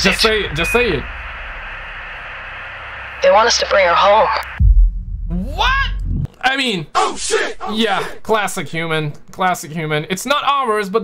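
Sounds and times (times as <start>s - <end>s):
radio static hiss: 0.0s - 4.6s
low hum: 0.0s - 10.1s.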